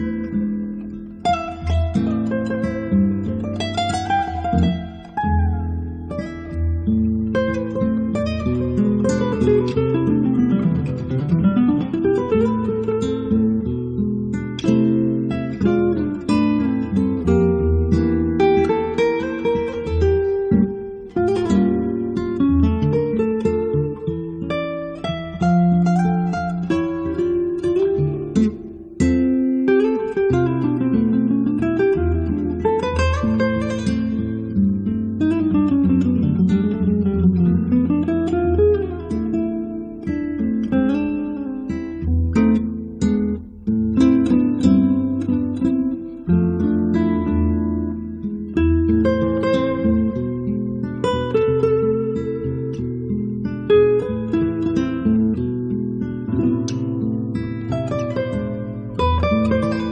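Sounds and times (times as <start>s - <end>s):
acoustic guitars playing: 0.0s - 59.9s.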